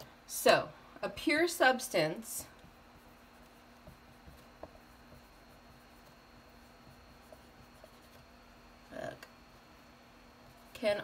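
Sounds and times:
low steady hum: 0.0 - 11.0
marker writing on whiteboard: 2.5 - 8.4.

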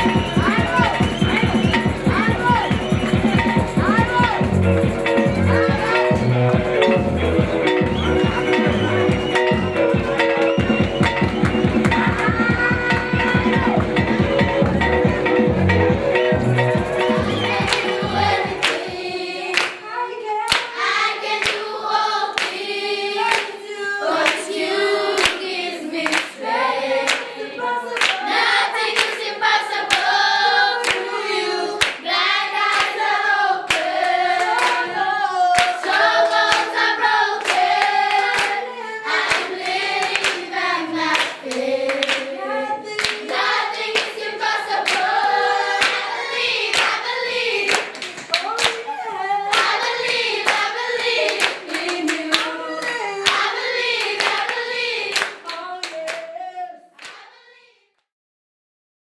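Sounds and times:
hand claps: 8.7 - 14.8, 17.6 - 18.9, 19.5 - 19.8, 20.5 - 20.7, 21.4 - 21.6, 22.4 - 22.6, 23.3 - 23.5, 26.0 - 26.3, 27.1 - 27.3, 28.0 - 28.2, 28.9 - 29.3, 31.8 - 32.0, 33.7 - 34.9, 35.6 - 38.6, 39.2 - 40.5, 41.1 - 42.3, 43.0 - 45.2, 45.8 - 48.8, 49.5 - 56.3, 57.0 - 57.2
children singing together: 16.8 - 57.7.

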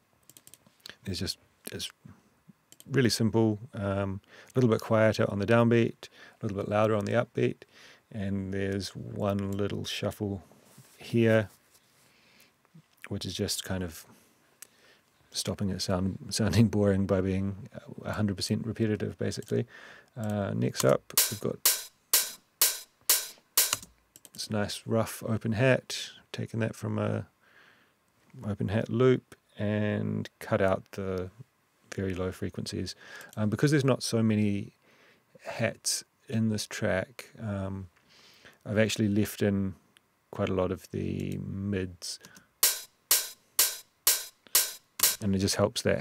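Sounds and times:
open hi-hat hits: 20.6 - 24.2, 42.6 - 45.6.

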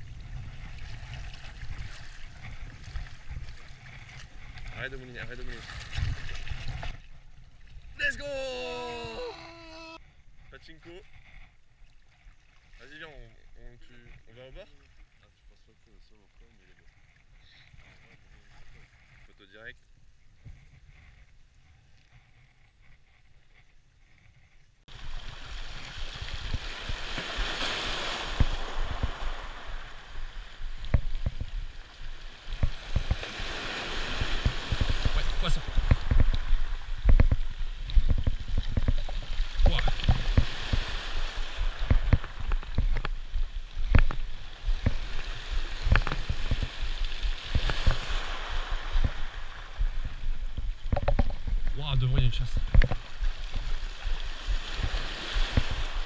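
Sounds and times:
wind rumble on microphone: 0.0 - 8.0, 20.0 - 56.0
waves washing over rocks: 24.9 - 56.0.

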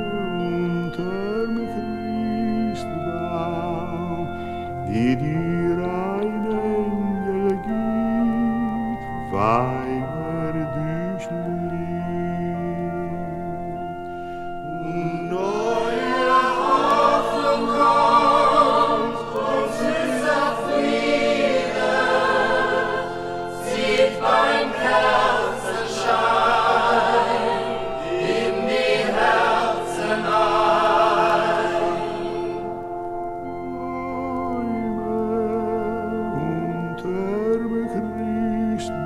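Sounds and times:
choir singing: 0.0 - 39.0
pipe organ chords: 0.0 - 39.0.

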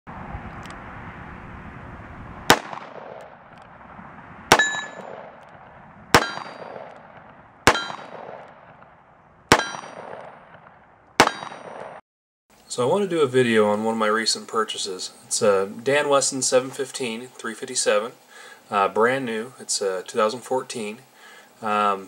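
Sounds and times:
revolver shots: 2.5 - 3.6, 4.5 - 8.9.

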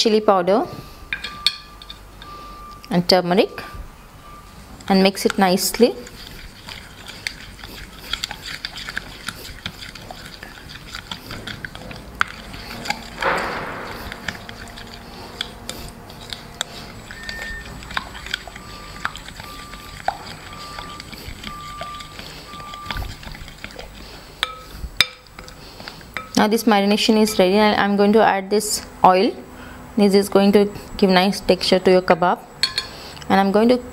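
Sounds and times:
spoon stirring in glass bowl: 4.9 - 26.5
rushing sound: 11.7 - 19.2.

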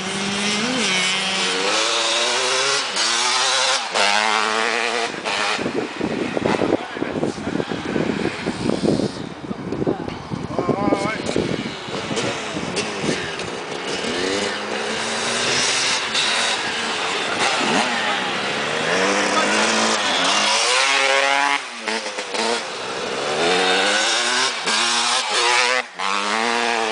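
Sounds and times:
dirt bike engines revving: 0.0 - 26.9.

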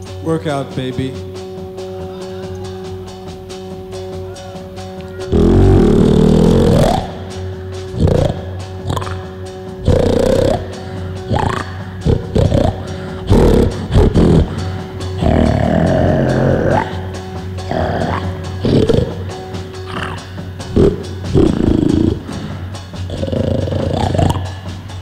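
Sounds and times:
rock band droning chord: 0.0 - 25.0.

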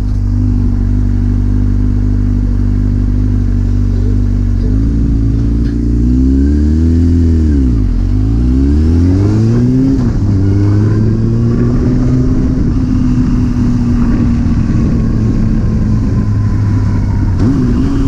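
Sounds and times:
motorcycle engine revving: 0.0 - 18.0.

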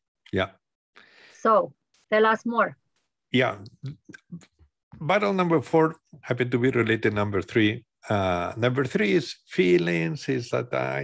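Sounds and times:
man speaking over video call: 3.4 - 11.0.

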